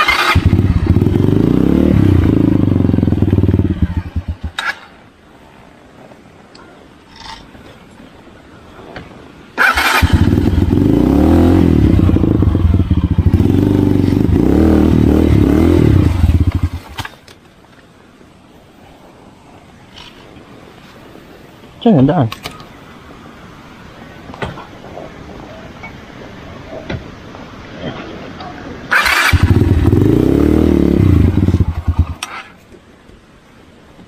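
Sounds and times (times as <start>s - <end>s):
motorcycle engine running: 0.0s - 4.6s, 10.0s - 17.0s, 29.0s - 32.2s.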